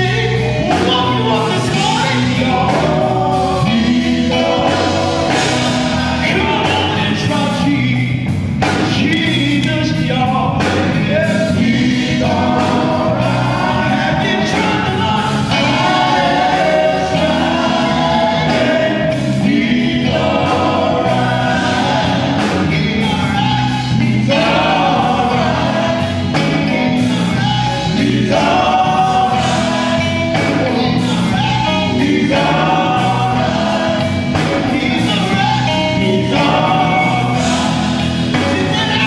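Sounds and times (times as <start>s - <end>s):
band with drums bass and keyboard: 0.0s - 39.0s
men singing in harmony: 0.0s - 39.0s.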